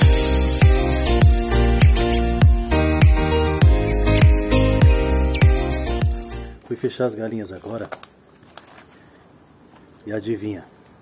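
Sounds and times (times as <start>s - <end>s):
night insects chirring: 8.2s - 11.0s.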